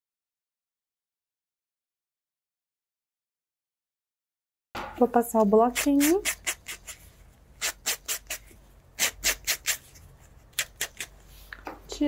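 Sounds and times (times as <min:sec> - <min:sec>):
nail buffer rasping on toenails: 0:05.4 - 0:11.2.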